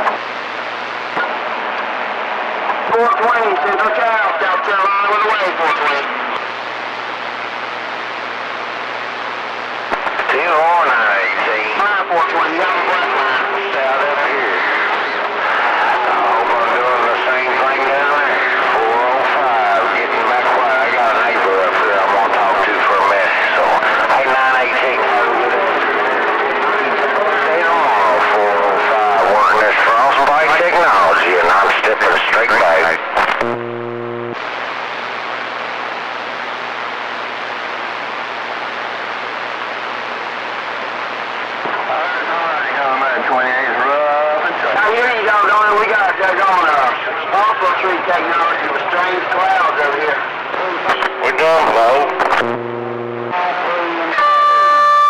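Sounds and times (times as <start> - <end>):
low hum under hiss: 0.0 - 55.0
garbled radio voices: 2.7 - 55.0.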